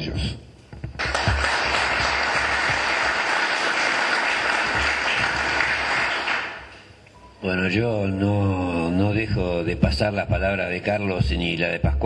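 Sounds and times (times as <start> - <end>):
audience applauding: 0.8 - 6.9.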